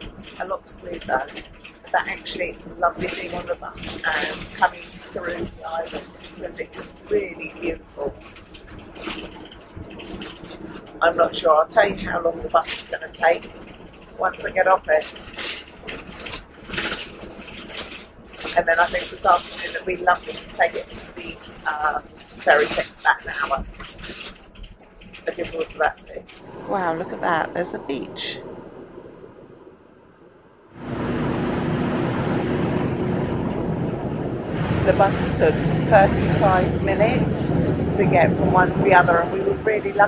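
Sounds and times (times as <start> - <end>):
bus engine running: 0.0 - 40.0
road noise: 0.0 - 40.0
rushes of noise: 26.3 - 40.0
wind on microphone: 30.8 - 40.0.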